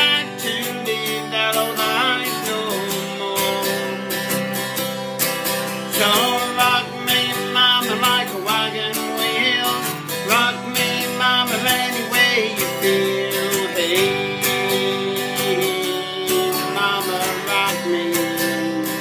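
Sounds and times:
man singing: 0.0 - 4.6, 5.8 - 19.0
acoustic guitar strumming: 0.0 - 19.0.

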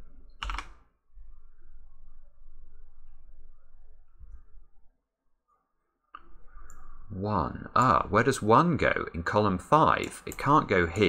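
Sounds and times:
computer keyboard keystroke: 0.4 - 0.7.

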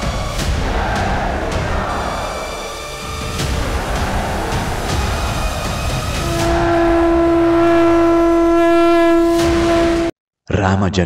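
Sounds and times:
music soundtrack: 0.0 - 10.1
conch shell blown: 6.2 - 10.1.

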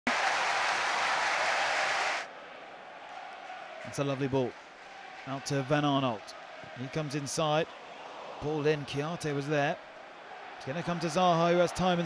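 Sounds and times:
stadium crowd applauding: 0.0 - 12.0.

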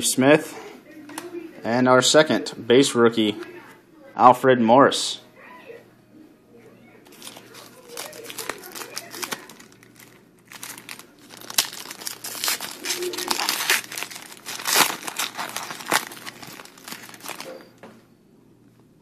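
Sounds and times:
foil wrapper crinkling and tearing: 7.0 - 17.7
cards rubbing and sliding: 12.1 - 17.4.

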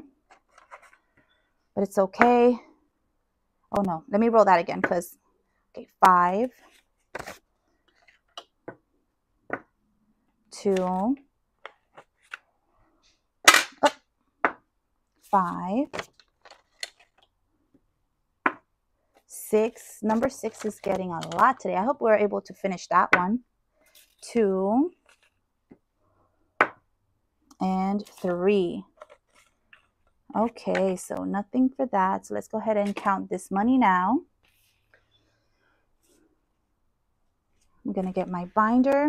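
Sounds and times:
paper bills rustling: 20.1 - 21.4, 29.0 - 29.9.

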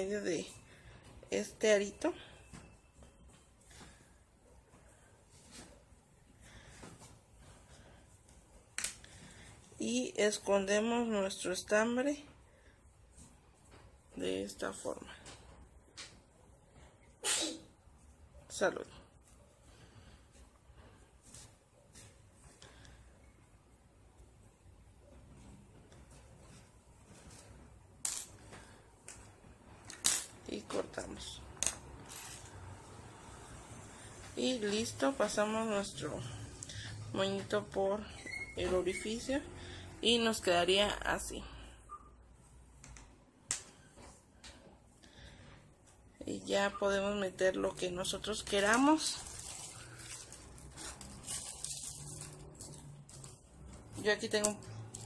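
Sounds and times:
hands rustling yarn purse: 47.6 - 55.0.

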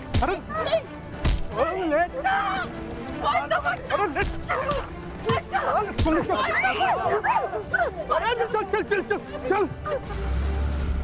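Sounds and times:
people shouting and yelping: 0.2 - 10.4
punch hits: 1.2 - 1.5.

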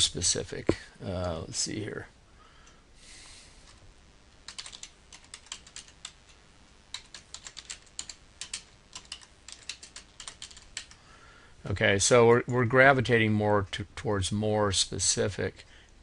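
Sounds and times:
computer keyboard typing: 4.4 - 6.2, 6.9 - 11.0.

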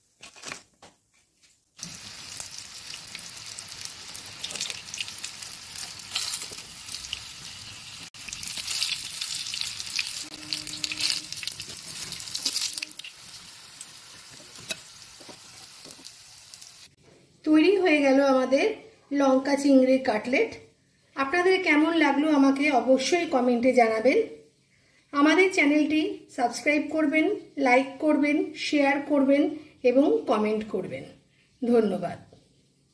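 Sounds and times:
cutlets sizzling in hot oil: 1.8 - 17.0.

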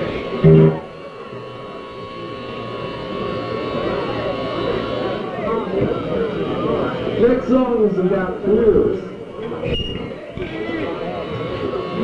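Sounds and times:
amplifier hum and buzz: 0.0 - 12.0
indistinct crowd chatter: 0.0 - 12.0.

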